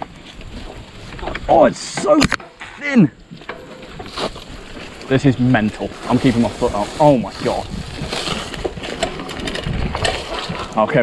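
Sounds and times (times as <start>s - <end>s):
bike clattering and rattling: 0.0s - 11.0s
tyres crunching on trail: 0.0s - 11.0s.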